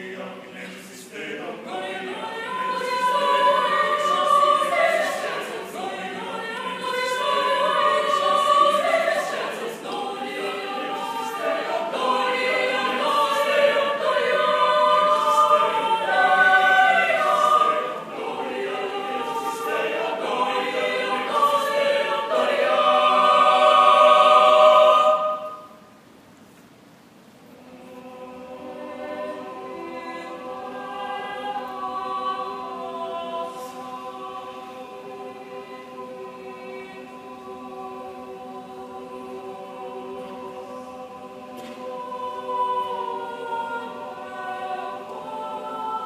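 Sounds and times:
mixed choir singing a cappella: 0.0 - 26.0, 27.5 - 46.0.

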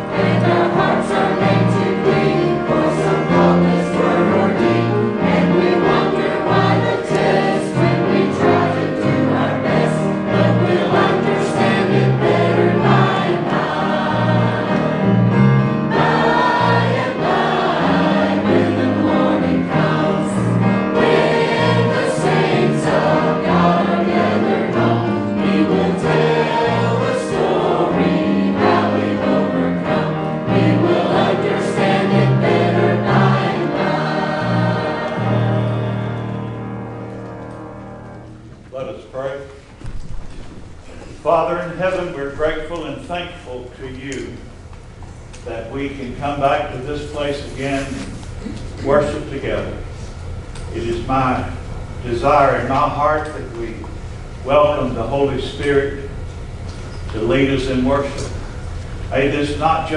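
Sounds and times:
mixed choir singing a hymn: 0.0 - 38.6, 57.2 - 59.9.

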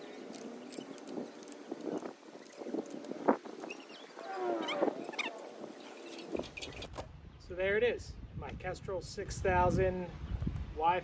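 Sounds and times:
calls falling in pitch: 3.9 - 6.0.

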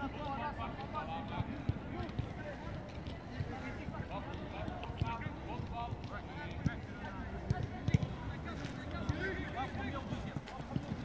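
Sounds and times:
footballs kicked on turf: 4.5 - 11.0.

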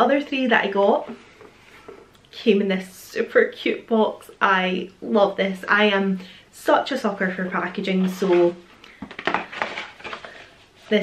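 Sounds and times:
cardboard box rustling: 7.4 - 10.9.

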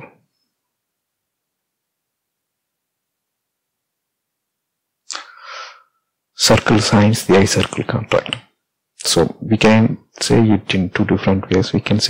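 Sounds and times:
sharp breath: 5.1 - 6.0.

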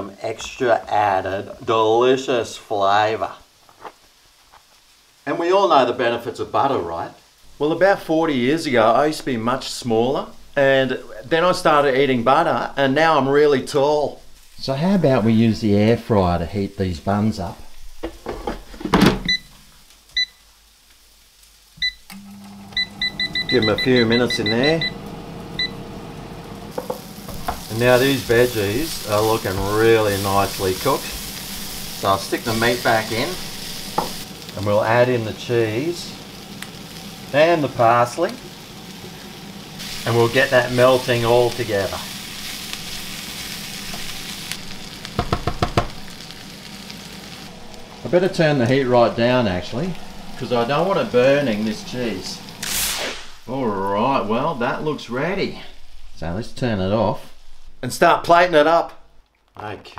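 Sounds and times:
food sizzling in a frying pan: 2.9 - 57.9
fan humming: 22.0 - 58.5
spatula knocking on pan: 34.0 - 34.2, 45.2 - 46.0.

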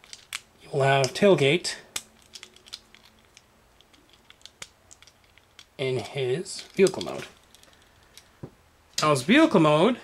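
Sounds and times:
plastic toy handling clicks: 2.0 - 5.7.

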